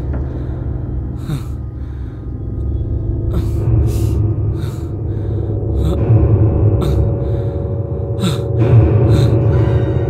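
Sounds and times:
low droning rumble: 0:00.0 - 0:10.0
man's frightened breaths: 0:00.0 - 0:10.0.

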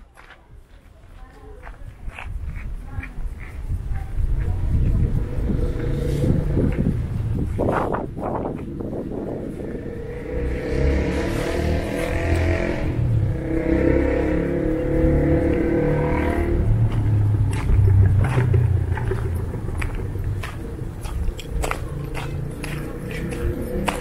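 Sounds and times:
low rumble: 0:03.5 - 0:24.0
vehicle engine running: 0:03.6 - 0:24.0.

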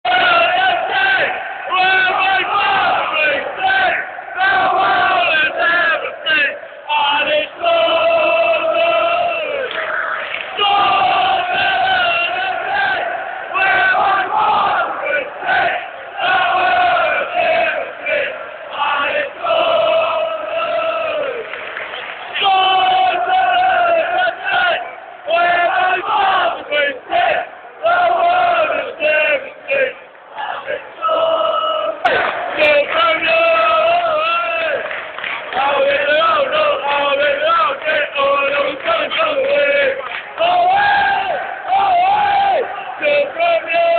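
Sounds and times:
stadium crowd singing a chant: 0:00.0 - 0:43.9.

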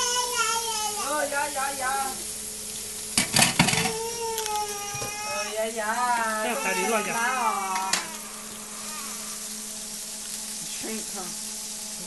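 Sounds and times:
meat patty sizzling on griddle: 0:00.0 - 0:12.0.

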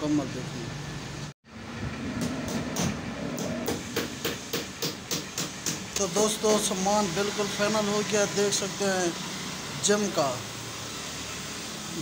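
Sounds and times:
workshop background noise: 0:00.0 - 0:12.0.

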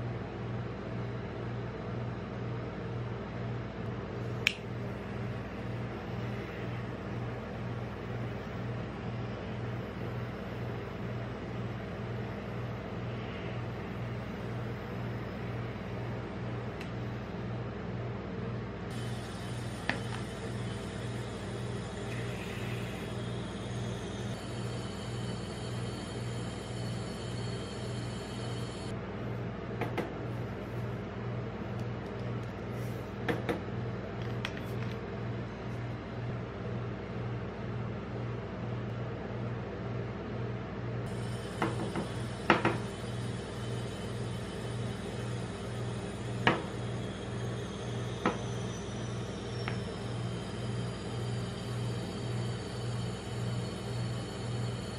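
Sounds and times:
refrigeration machinery humming: 0:00.0 - 0:54.9.

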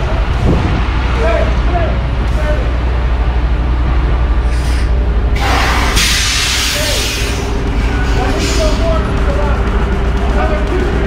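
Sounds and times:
diesel truck engine idling: 0:00.0 - 0:11.0
air brakes hissing: 0:04.4 - 0:09.0.

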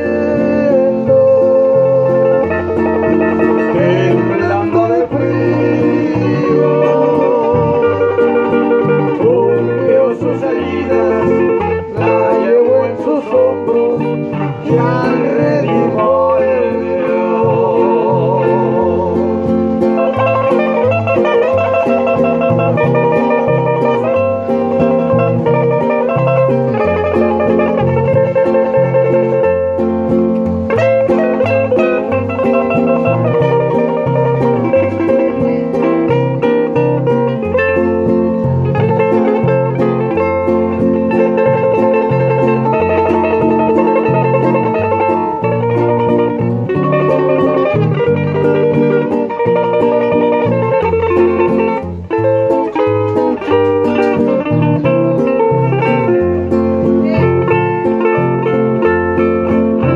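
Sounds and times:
acoustic guitars playing: 0:00.0 - 0:59.9.

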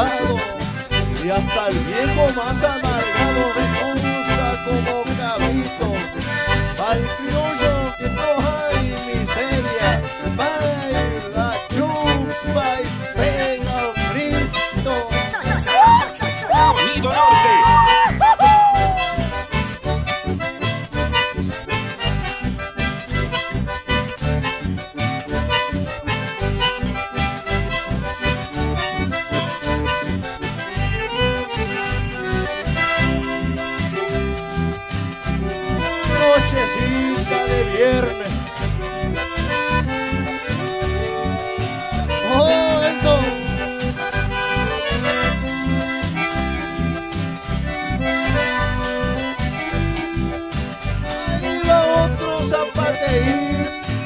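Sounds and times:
acoustic guitar strumming: 0:00.0 - 0:54.0
button accordions playing melody: 0:00.0 - 0:54.0.

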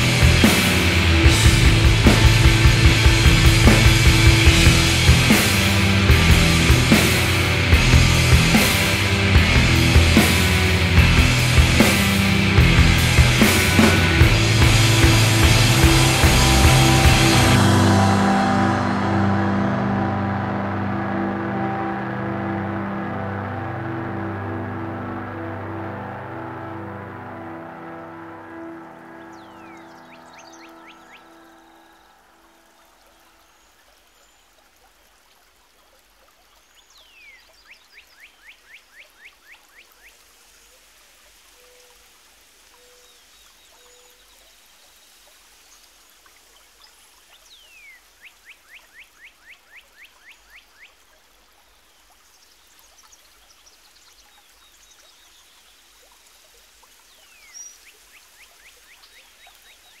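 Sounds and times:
music: 0:00.0 - 0:33.0
bird singing: 0:28.6 - 0:34.4.

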